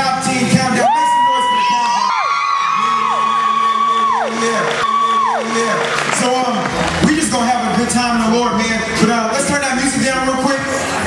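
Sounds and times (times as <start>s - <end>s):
background music: 0.0s - 11.0s
people whooping: 0.7s - 7.6s.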